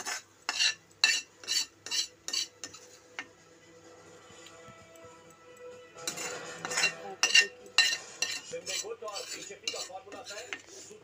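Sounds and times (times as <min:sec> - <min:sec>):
metal spatula scraping steel bowl: 0:00.0 - 0:03.3, 0:06.0 - 0:11.0.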